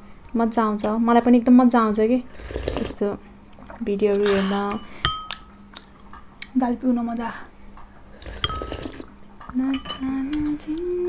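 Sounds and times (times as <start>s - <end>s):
spoon clinking against ceramic bowl: 4.2s - 5.5s, 8.4s - 8.8s, 9.7s - 10.1s.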